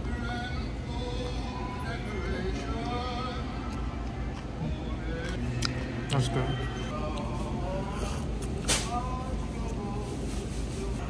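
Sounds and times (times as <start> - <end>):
background music with singing: 0.0 - 11.0
low room hum: 0.0 - 11.0.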